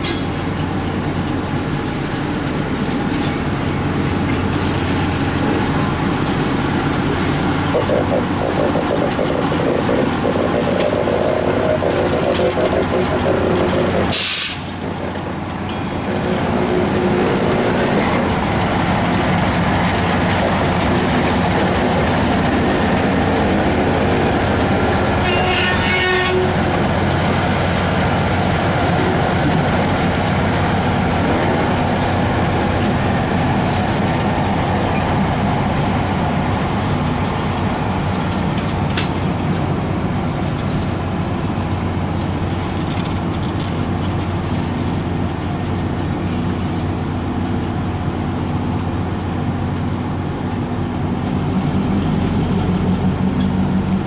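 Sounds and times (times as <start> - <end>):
locomotive engine hum: 0.0 - 54.0
train wheels clattering on rails: 0.0 - 54.0.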